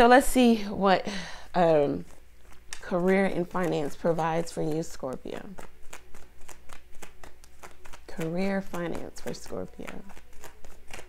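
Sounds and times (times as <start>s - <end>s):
cards being shuffled: 1.8s - 11.0s.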